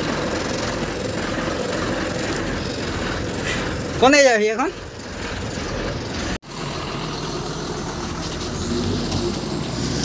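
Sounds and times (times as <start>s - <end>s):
diesel truck engine running: 0.0s - 10.0s
road noise: 0.0s - 10.0s.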